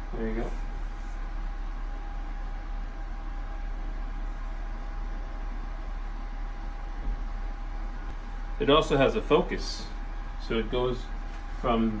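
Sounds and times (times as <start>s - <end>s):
fan noise: 0.0s - 12.0s.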